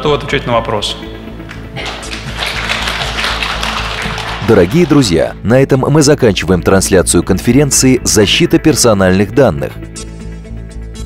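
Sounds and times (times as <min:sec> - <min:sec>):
music with steady beat: 0:00.2 - 0:05.4, 0:09.7 - 0:11.0
audience applauding: 0:01.5 - 0:05.3.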